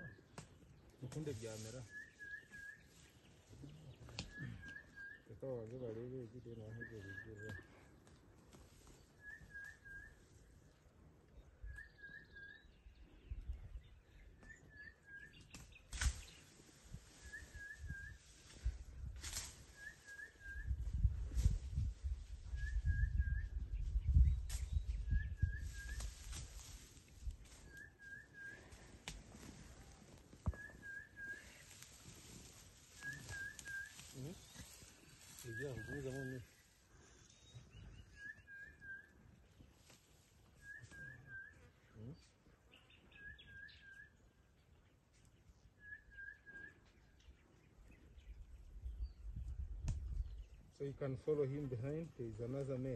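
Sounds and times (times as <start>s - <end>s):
bird whistling song: 1.8s - 3.1s, 4.1s - 5.4s, 6.7s - 7.8s, 9.2s - 10.3s, 11.6s - 13.4s, 14.1s - 16.4s, 17.1s - 18.6s, 19.6s - 21.6s, 22.4s - 26.4s, 27.6s - 28.8s, 30.4s - 31.8s, 33.0s - 36.4s, 37.2s - 39.2s, 40.6s - 41.8s, 42.7s - 44.2s, 45.8s - 47.4s
bird whistling call: 1.9s - 2.9s, 4.2s - 5.2s, 9.2s - 10.2s, 17.2s - 18.2s, 19.7s - 20.8s, 30.4s - 31.6s, 33.0s - 34.6s, 37.3s - 39.1s, 40.6s - 41.7s, 43.1s - 44.1s, 45.8s - 46.8s
sharp snap: 15.5s - 16.3s.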